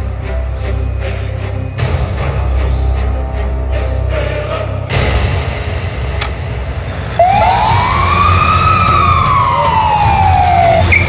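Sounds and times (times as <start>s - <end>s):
ambulance siren wailing: 7.2s - 11.0s.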